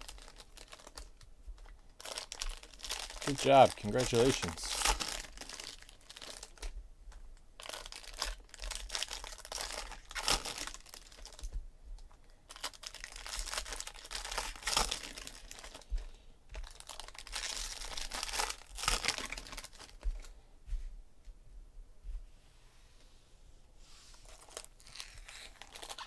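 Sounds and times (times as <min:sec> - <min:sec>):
foil wrappers crinkling and tearing: 0:00.0 - 0:06.7, 0:07.6 - 0:11.6, 0:12.5 - 0:20.1, 0:24.2 - 0:26.0.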